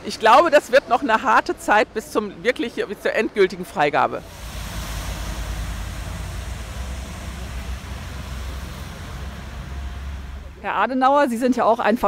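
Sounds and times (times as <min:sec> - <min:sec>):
traffic on wet road: 0:04.2 - 0:10.7.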